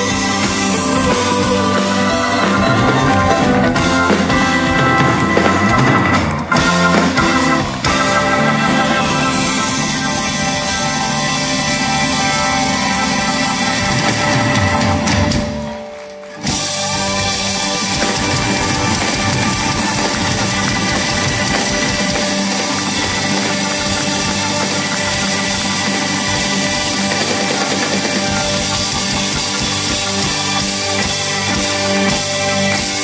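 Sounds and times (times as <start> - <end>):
live band playing: 0.0 - 33.0.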